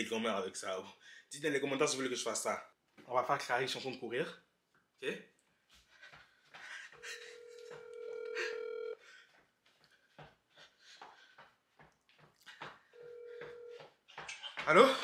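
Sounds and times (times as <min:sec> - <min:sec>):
telephone ringback tone: 0:07.1 - 0:09.0, 0:13.0 - 0:13.8.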